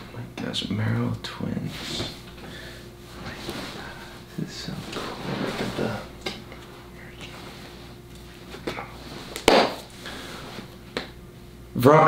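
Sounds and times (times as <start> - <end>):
poster board thump: 9.4 - 9.8.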